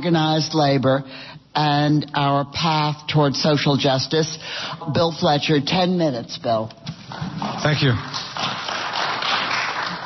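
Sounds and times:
audience applauding: 7.1 - 10.0.

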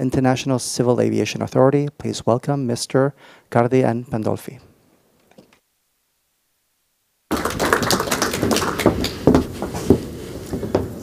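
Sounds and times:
audience applause: 7.3 - 9.5.

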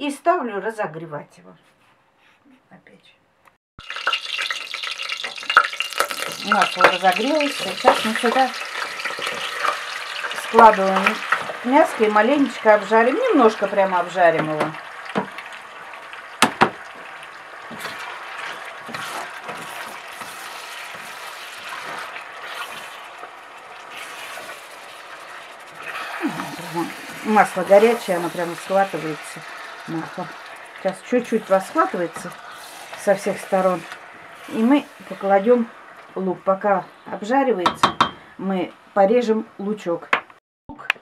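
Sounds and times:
oil popping: 3.8 - 11.6, 14.3 - 34.5
hot oil sizzling in a pot: 3.8 - 37.2
spatula knocking pot: 16.4 - 22.1, 37.6 - 38.2.

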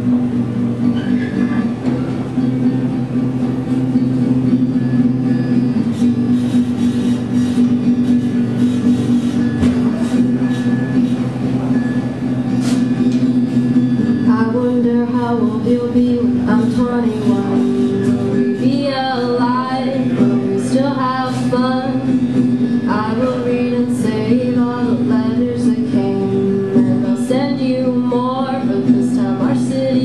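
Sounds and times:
acoustic guitar strumming chords: 0.0 - 30.0.

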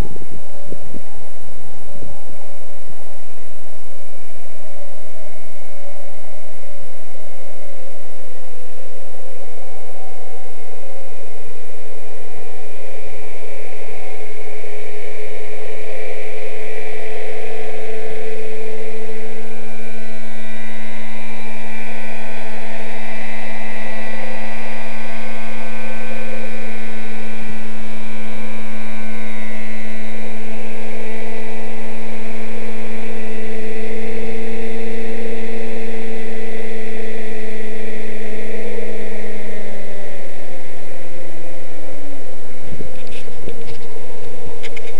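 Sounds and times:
model helicopter rotor whine: 13.2 - 44.9.

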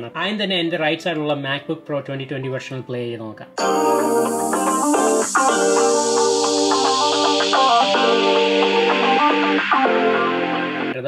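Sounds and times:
guitar music through laptop speakers: 3.6 - 11.0.

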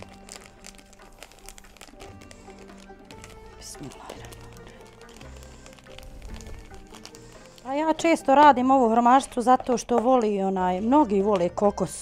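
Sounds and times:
plastic bag crinkling: 0.0 - 10.2
soft music with low held notes: 0.0 - 12.0.

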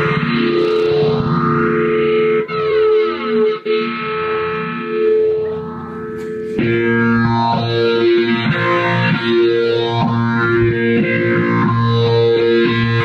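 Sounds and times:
electric piano with effects: 0.0 - 13.0.

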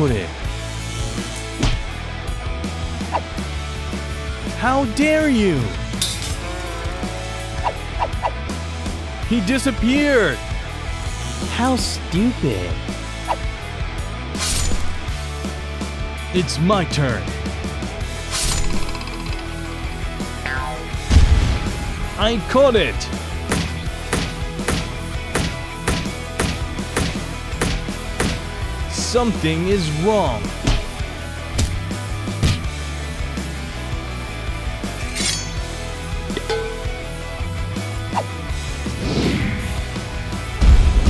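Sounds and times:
background music: 0.0 - 41.0
clinking and hitting effects: 6.0 - 6.5, 34.9 - 37.4.

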